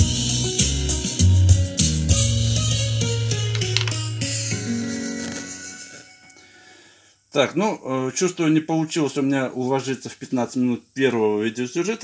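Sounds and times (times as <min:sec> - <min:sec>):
music through stereo speakers: 0:00.0 - 0:06.3.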